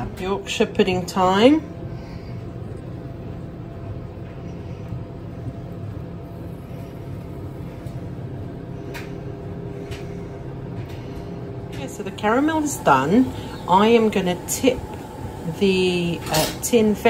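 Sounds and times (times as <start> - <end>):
kitchen appliance hum: 0.0 - 17.0.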